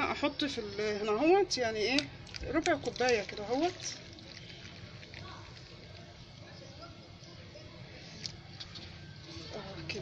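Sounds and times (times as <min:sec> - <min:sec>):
liquid trickling into a bowl: 0:01.9 - 0:06.5.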